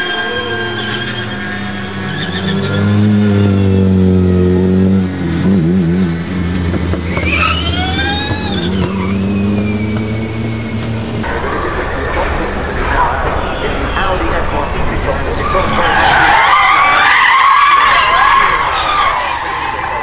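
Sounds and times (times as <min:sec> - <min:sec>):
engine revving: 0:00.0 - 0:14.2
race car engines running: 0:00.0 - 0:20.0.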